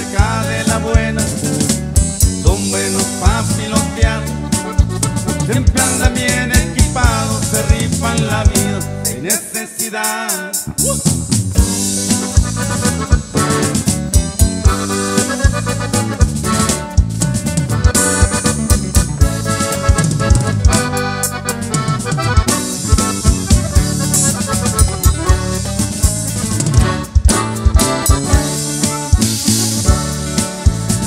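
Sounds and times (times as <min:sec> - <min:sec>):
button accordion melody: 0:00.0 - 0:09.3, 0:11.6 - 0:31.0
electric bass: 0:00.0 - 0:09.4, 0:10.5 - 0:31.0
drum kit steady beat: 0:00.0 - 0:31.0
guitar: 0:00.0 - 0:31.0.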